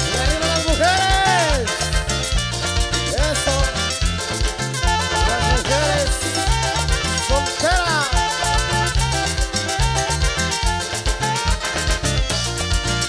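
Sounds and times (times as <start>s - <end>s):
drums: 0.0s - 13.0s
electric bass: 0.0s - 13.0s
melody with sliding notes: 0.0s - 13.0s
metal guiro scraping: 0.0s - 13.0s.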